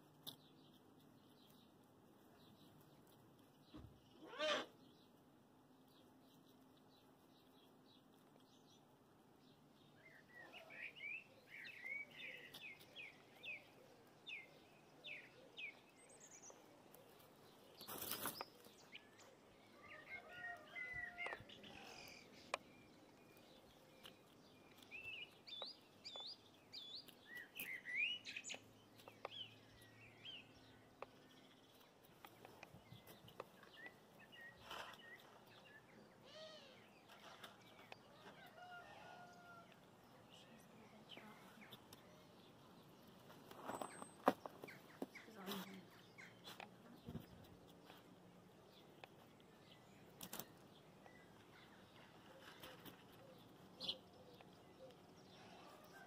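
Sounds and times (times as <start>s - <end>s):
songbird singing: 0.0s - 56.0s
skunk squeaking call: 4.2s - 4.7s.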